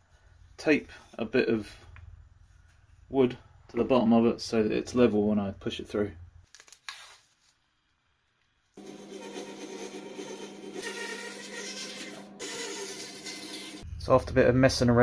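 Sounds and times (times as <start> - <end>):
bandsaw cutting wood: 8.8 - 13.8.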